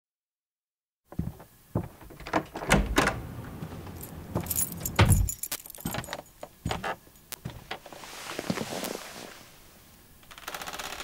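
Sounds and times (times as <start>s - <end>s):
keys jangling: 3.8s - 6.5s
heavy thumps: 3.9s - 6.8s.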